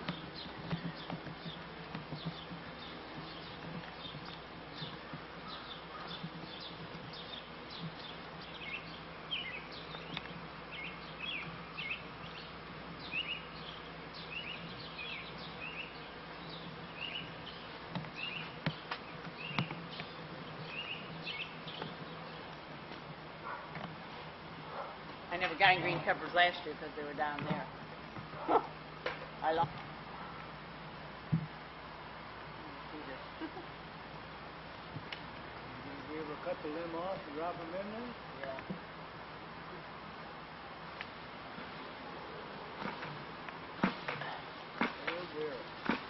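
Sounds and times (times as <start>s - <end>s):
bird chirps: 0.0s - 22.6s
bee swarm buzzing: 0.0s - 38.2s, 38.8s - 46.0s.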